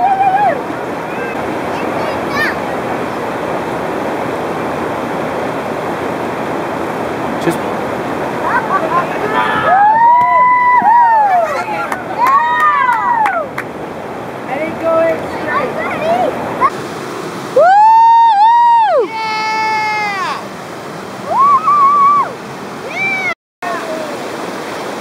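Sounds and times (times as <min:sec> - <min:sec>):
people whooping: 0:00.0 - 0:01.3, 0:08.7 - 0:13.6, 0:17.6 - 0:20.4, 0:21.2 - 0:24.1
river water rushing: 0:00.0 - 0:25.0.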